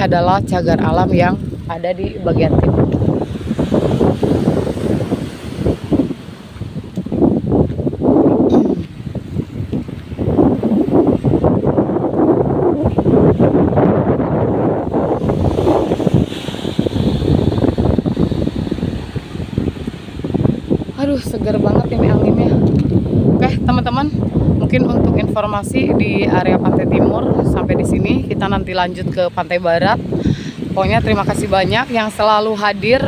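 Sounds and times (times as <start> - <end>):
waves washing on beach: 0.0 - 33.0
wind buffeting microphone: 0.0 - 33.0.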